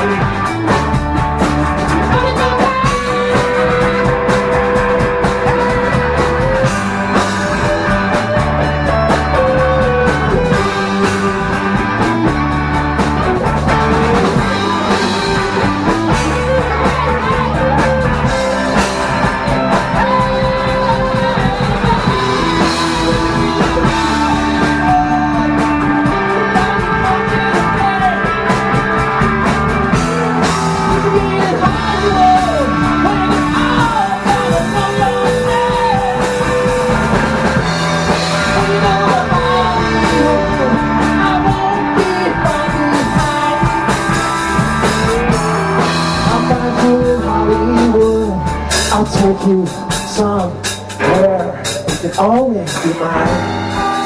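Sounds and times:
bending melody notes: 0.0 - 49.5
bass guitar: 0.0 - 54.0
drum kit with cymbals: 0.0 - 54.0
electric guitars: 0.0 - 54.0.

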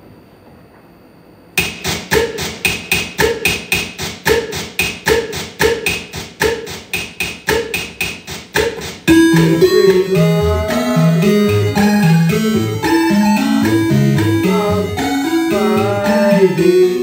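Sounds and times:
electronic clicky percussion loop: 1.6 - 17.0.

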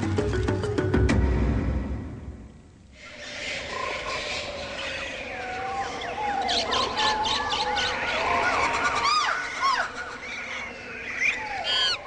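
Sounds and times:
bird calls and chirps: 3.0 - 12.0.

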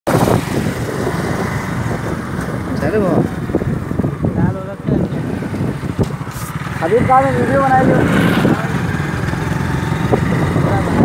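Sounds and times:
motorbike engine running: 0.1 - 11.0
wind noise: 0.1 - 11.0.

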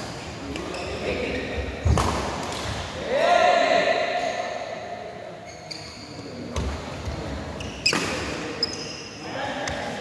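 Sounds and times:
players' voices echoing: 0.0 - 10.0.

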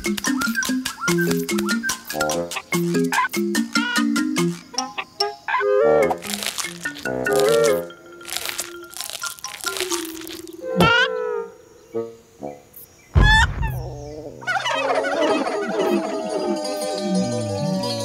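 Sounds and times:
playful cartoon music: 0.0 - 10.4, 14.4 - 18.0
low thud: 13.1 - 14.4.

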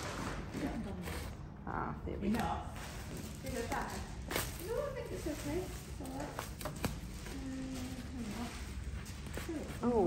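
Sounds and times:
newspaper crackling: 2.2 - 10.0.

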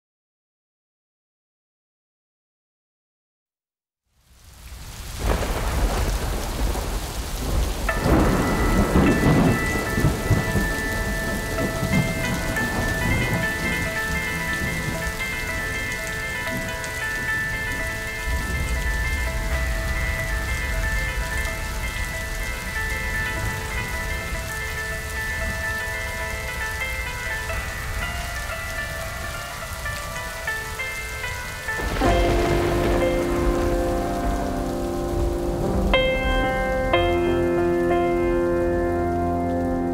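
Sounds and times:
steady rain: 4.1 - 39.9
low rumble of thunder: 4.8 - 28.0, 31.8 - 38.0
low piano notes: 7.6 - 39.9.

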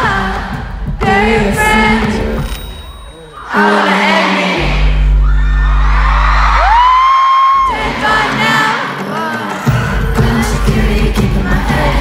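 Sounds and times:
live pop concert music: 0.0 - 12.0
crowd screaming: 3.2 - 8.8
deep steady bass: 4.8 - 6.9.

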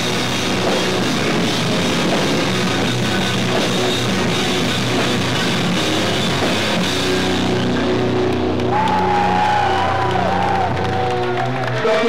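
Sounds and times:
distorted electric guitars and bass: 0.0 - 12.0.

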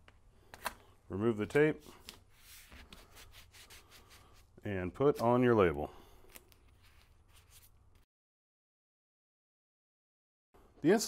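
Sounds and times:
scratchy strokes: 2.3 - 4.5.

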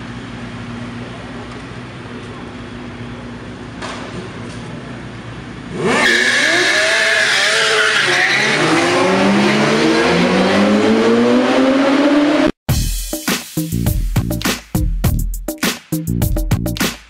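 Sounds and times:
street traffic: 0.0 - 12.6
motorcycle engines revving: 0.3 - 12.6.

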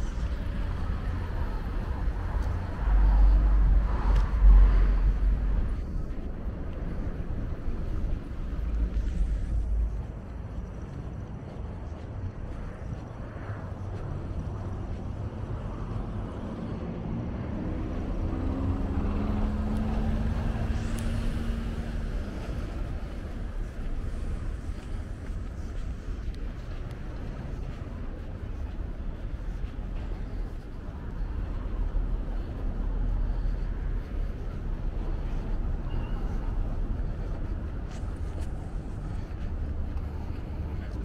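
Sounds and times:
city road traffic: 0.0 - 41.0
engine hum rising in pitch: 15.6 - 23.8.

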